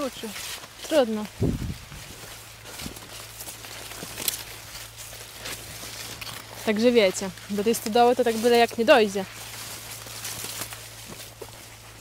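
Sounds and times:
corn stalks and leaves rustling: 0:00.0 - 0:12.0
footsteps: 0:00.0 - 0:12.0
leaves crackling: 0:00.0 - 0:12.0.

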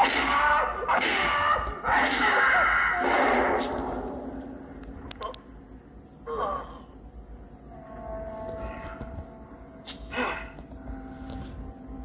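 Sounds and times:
faint music with held tones: 0:00.0 - 0:12.0.

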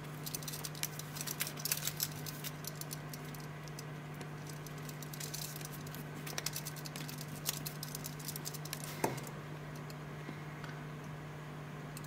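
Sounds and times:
steady low hum: 0:00.0 - 0:12.0
watch strap clicks and rustles: 0:00.2 - 0:03.8, 0:04.4 - 0:08.9.

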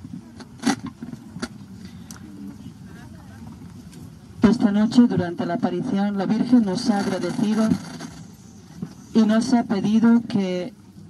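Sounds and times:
murmur of distant voices: 0:00.0 - 0:11.0
steady low hum: 0:00.0 - 0:11.0.

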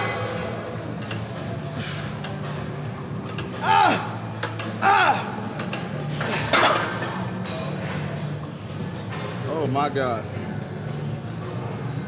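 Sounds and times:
background music: 0:00.0 - 0:12.0
man straining exertion cries: 0:03.6 - 0:04.2, 0:04.8 - 0:05.4.

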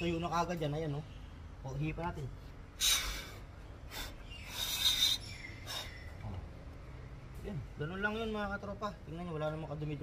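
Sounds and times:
person blowing short breaths: 0:02.8 - 0:06.0.

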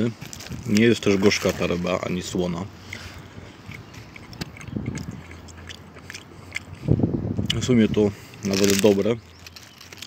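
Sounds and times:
person chewing food: 0:02.4 - 0:10.0
wet mouth clicks: 0:02.8 - 0:07.6.

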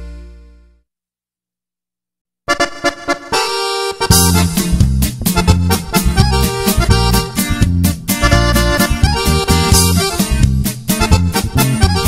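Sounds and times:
accordion melody: 0:00.0 - 0:00.8, 0:02.5 - 0:12.0
bass line: 0:02.7 - 0:12.0
strummed guitar: 0:04.0 - 0:12.0.

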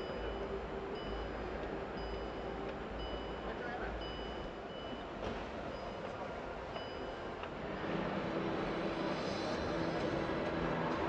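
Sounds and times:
exhibition hall din: 0:00.0 - 0:11.0.

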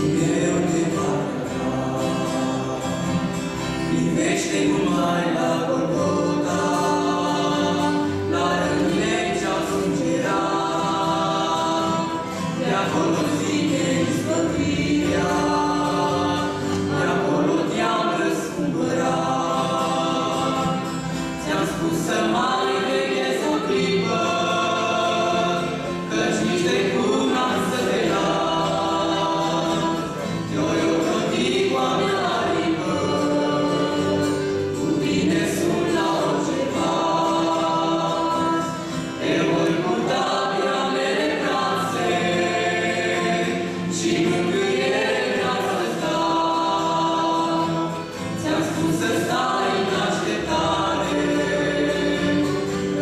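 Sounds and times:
acoustic guitar: 0:00.0 - 0:53.0
man and woman singing: 0:00.0 - 0:53.0.

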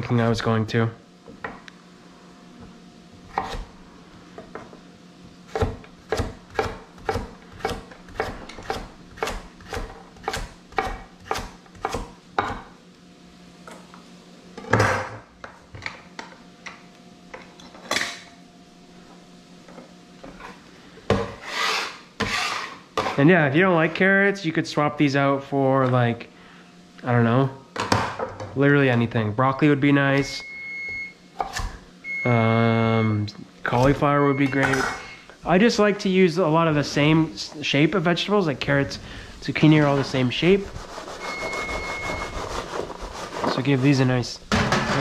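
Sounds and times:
knife chopping on wooden board: 0:05.5 - 0:12.7
knife scraping across board: 0:21.4 - 0:23.2, 0:39.8 - 0:44.1.

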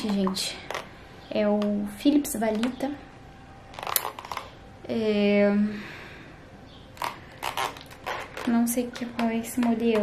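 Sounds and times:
plastic clicks and rustling: 0:03.7 - 0:04.6, 0:07.0 - 0:10.0.

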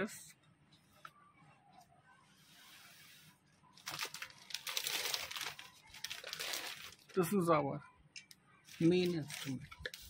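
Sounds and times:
plastic bag crinkling: 0:03.8 - 0:07.4, 0:08.8 - 0:10.0.

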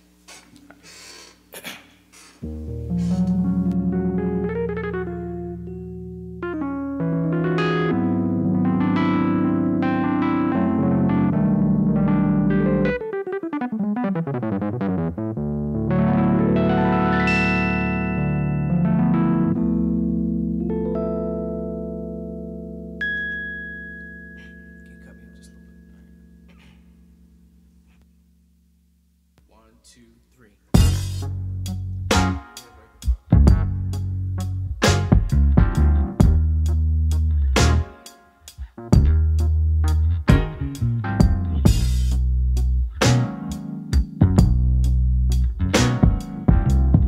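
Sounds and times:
electric keyboard chords: 0:02.4 - 0:28.7, 0:30.8 - 0:47.0.

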